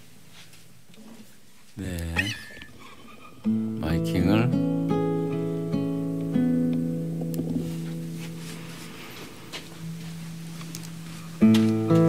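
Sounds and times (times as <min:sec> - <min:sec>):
person speaking: 0:01.8 - 0:02.7, 0:03.8 - 0:04.6
classical guitar chord ringing: 0:03.4 - 0:08.6, 0:11.4 - 0:12.0.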